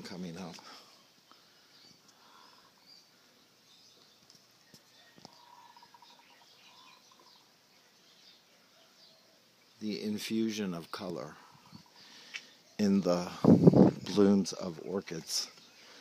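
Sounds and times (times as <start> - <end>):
faint bird chirps: 0.5 - 16.0.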